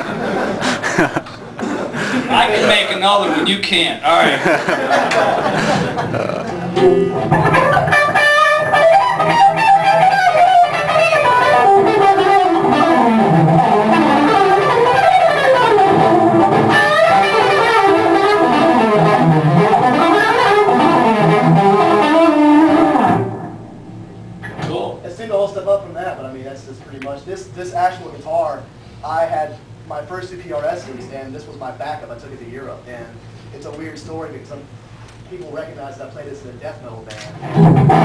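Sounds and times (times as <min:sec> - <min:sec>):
electric guitar lead runs: 0:06.7 - 0:24.6, 0:37.4 - 0:38.0.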